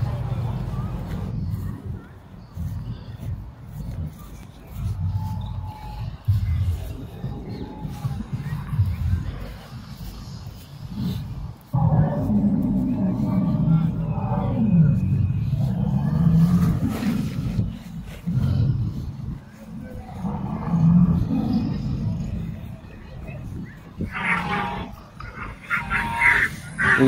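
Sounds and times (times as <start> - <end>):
dinosaur roars over loudspeakers: 11.7 - 17.7, 20.1 - 22.6.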